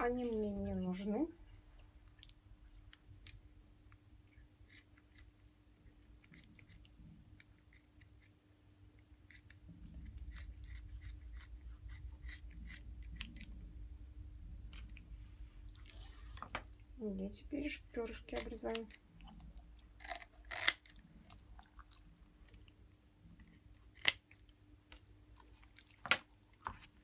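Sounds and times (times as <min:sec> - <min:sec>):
low rumble: 0:11.5 - 0:15.9
scissors snipping fish fins: 0:20.0 - 0:20.9.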